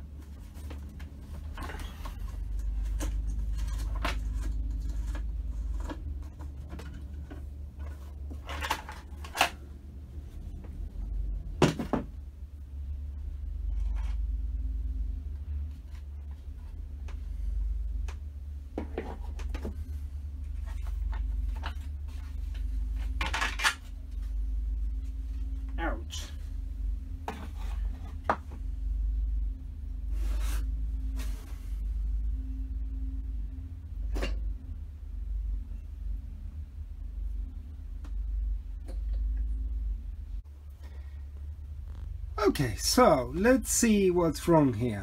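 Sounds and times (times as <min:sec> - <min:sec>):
low hum: 0:00.0 - 0:45.0
plastic and metal parts clattering: 0:00.3 - 0:09.7, 0:18.8 - 0:24.3.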